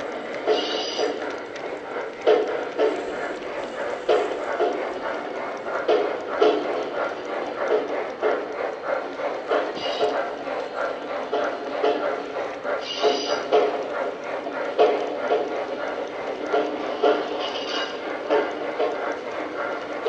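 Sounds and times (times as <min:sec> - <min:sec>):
model steam locomotive chuffing: 0:00.0 - 0:20.0
wheels rumbling on track: 0:00.0 - 0:20.0.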